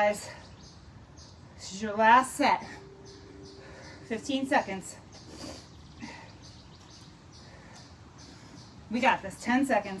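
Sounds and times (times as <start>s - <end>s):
faint bird chirps: 0.2s - 9.0s.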